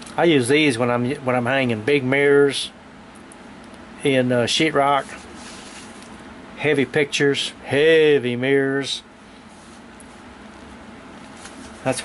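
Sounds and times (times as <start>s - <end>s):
low buzzing room hum: 0.0s - 12.0s
man speaking: 6.6s - 9.0s.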